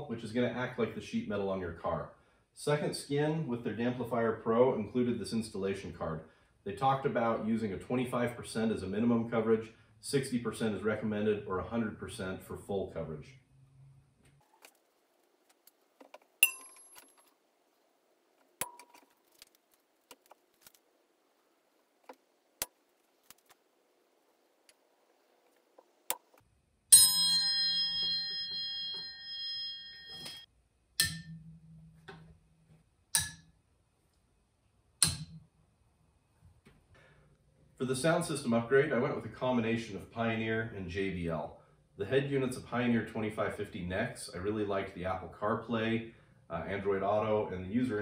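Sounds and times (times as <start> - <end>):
steel triangle ringing: 26.9 - 31.8.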